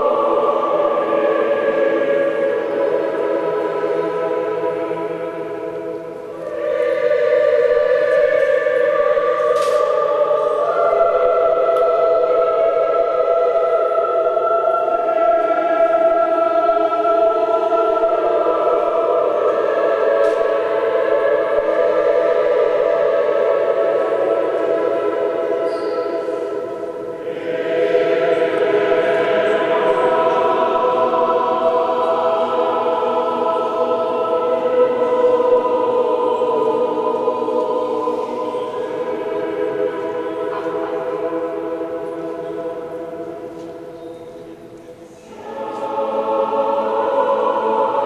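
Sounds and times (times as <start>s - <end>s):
choir chanting a cappella: 0.0s - 48.0s.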